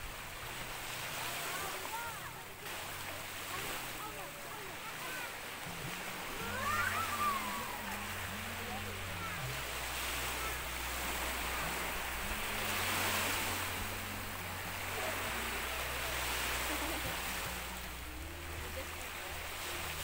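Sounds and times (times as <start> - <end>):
small waves washing on shore: 0.0 - 20.0
voices: 0.6 - 20.0.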